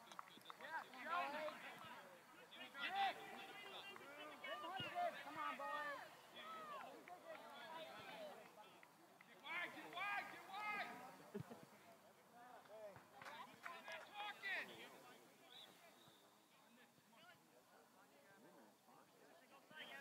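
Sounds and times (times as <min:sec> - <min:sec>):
people shouting: 0:04.1 - 0:07.0.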